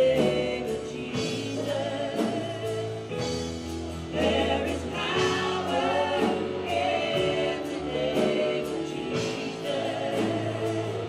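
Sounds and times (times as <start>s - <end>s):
drums and cymbals: 0.0s - 11.0s
group singing gospel song: 0.0s - 11.0s.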